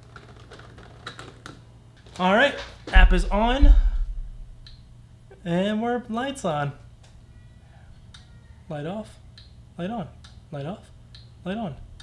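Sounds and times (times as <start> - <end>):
faint low hum: 2.3 - 12.0.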